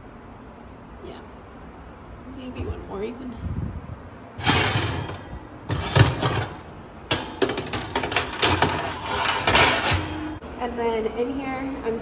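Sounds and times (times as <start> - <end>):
oven racks scraping and clanking: 4.4 - 10.4.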